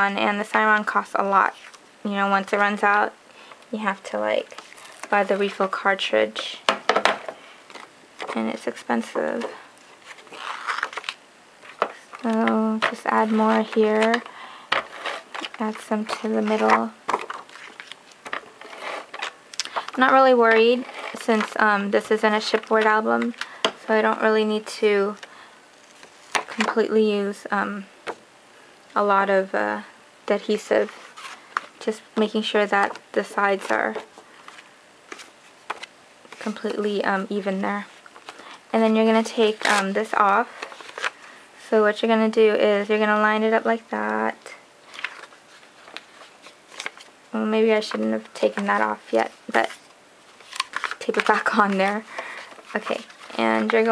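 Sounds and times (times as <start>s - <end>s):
paper handling: 9.3s - 23.6s, 37.8s - 41.2s, 44.9s - 47.1s, 47.8s - 53.9s
tape gun scraping across paper: 12.2s - 19.4s.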